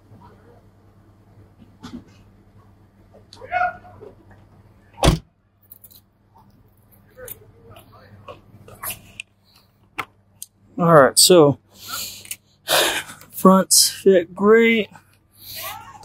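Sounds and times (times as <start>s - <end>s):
low steady hum: 0.0s - 16.0s
car door thud: 5.0s - 5.3s.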